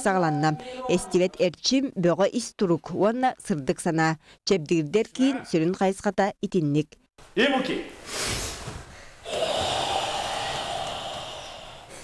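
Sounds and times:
group breathing forcefully: 8.0s - 12.0s.

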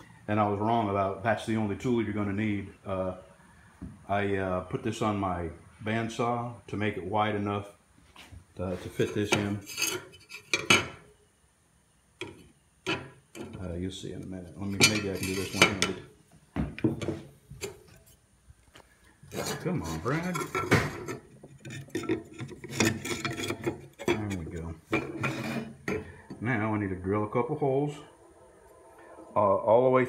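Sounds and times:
wood scraping against steel: 8.7s - 11.0s, 12.2s - 16.1s, 19.0s - 26.6s.

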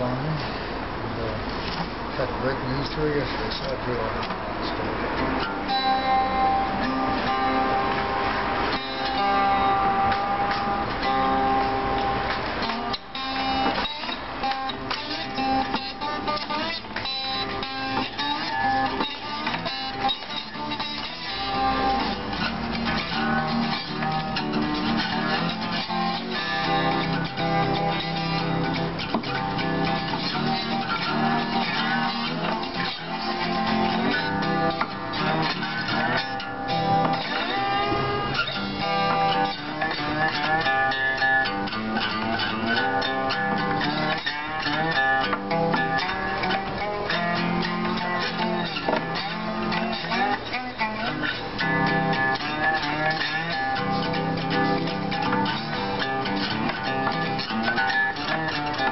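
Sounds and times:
acoustic guitar: 0.0s - 58.9s.

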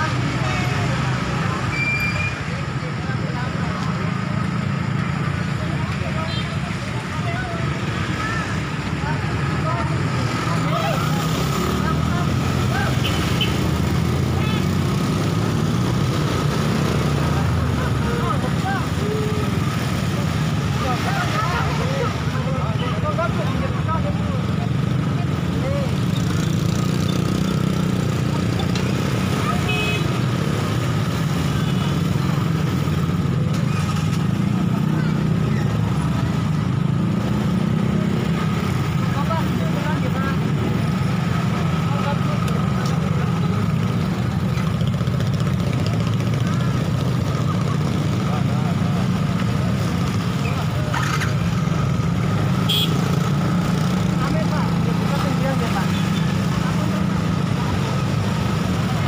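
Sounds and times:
people talking indistinctly: 0.0s - 59.0s.

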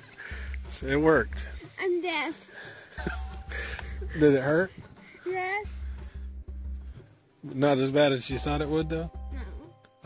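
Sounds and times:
girl laughing: 3.0s - 4.2s.

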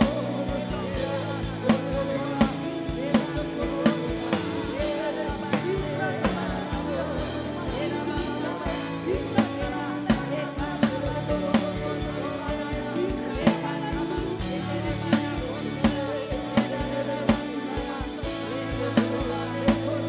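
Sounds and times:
drum kit slow beat: 0.0s - 20.0s
held chords: 0.0s - 20.0s
voices singing: 0.0s - 20.0s.

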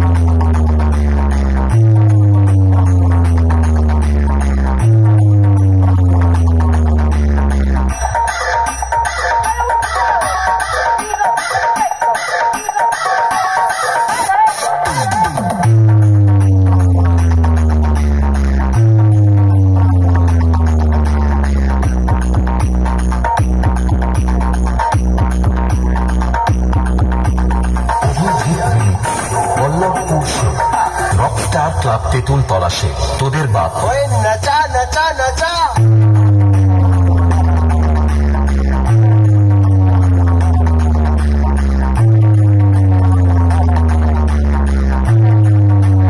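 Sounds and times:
deep bass notes sliding down: 0.0s - 8.0s, 15.6s - 29.8s, 35.8s - 46.0s
electronic dance music: 0.0s - 46.0s.

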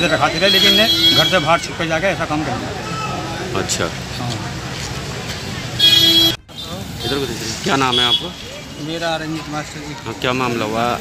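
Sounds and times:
low street background: 0.0s - 11.0s
vehicle horn honking: 0.4s - 1.6s, 5.8s - 7.3s, 7.9s - 8.4s.

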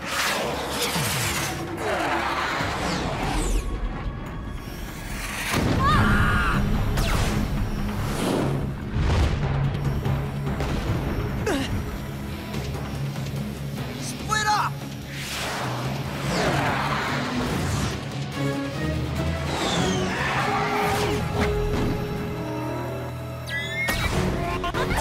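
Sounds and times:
action background music: 0.0s - 25.0s.

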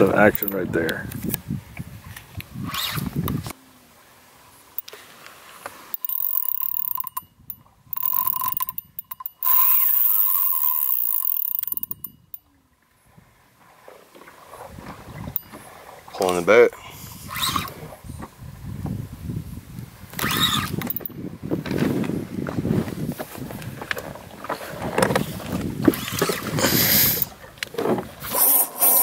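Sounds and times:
fishing reel drag buzzing: 2.6s - 3.2s, 5.9s - 12.4s, 17.2s - 17.8s, 20.1s - 21.1s, 25.8s - 27.3s, 28.2s - 29.0s.

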